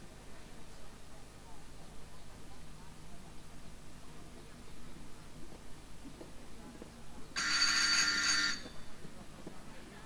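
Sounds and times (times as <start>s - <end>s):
electric bell ringing: 7.4s - 8.7s.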